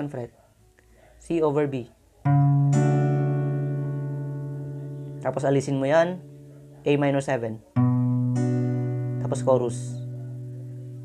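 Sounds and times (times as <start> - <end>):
acoustic guitar chord ringing: 2.2 - 11.0.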